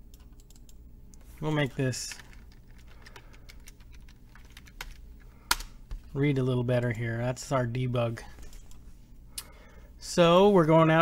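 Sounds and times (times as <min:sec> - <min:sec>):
soft keyboard keystrokes: 0:00.1 - 0:01.3, 0:02.0 - 0:05.7.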